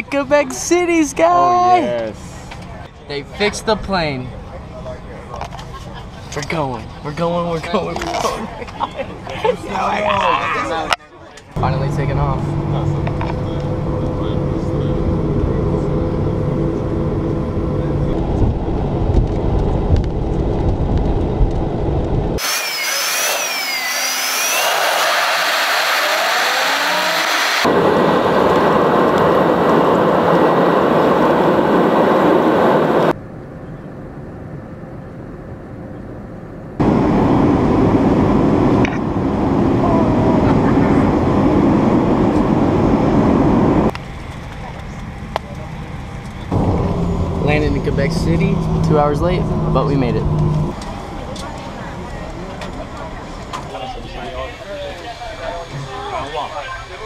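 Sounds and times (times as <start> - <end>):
airplane cabin noise: 11.4 - 22.5, 27.3 - 57.0
jet engines: 11.5 - 57.0.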